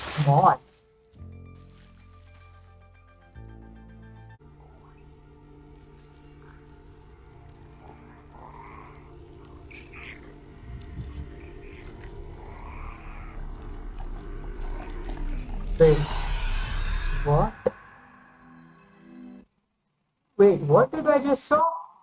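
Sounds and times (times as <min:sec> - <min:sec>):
low synth music drone: 0:00.0 - 0:19.4
small creature chirping squeals: 0:07.8 - 0:18.7.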